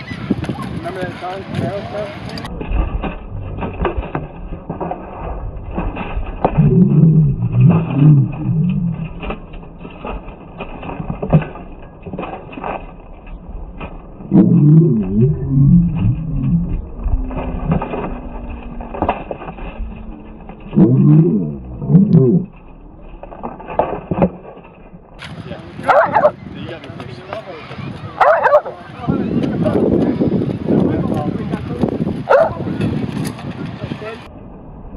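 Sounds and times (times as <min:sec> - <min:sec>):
slowed deep voice: 0:05.3 - 0:09.2, 0:14.2 - 0:23.1.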